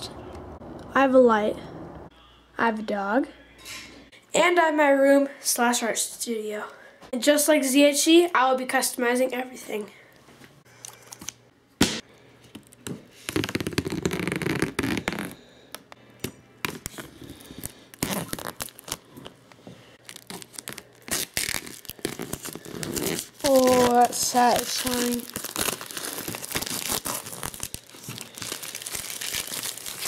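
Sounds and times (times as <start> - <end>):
plastic wrapping crinkling: 16.7 - 19.4, 20.0 - 30.0.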